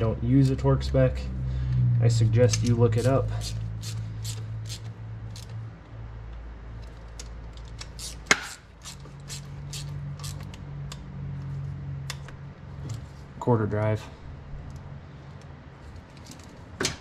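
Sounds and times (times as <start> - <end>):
ratchet clicking: 2.5 - 5.6, 6.8 - 11.0.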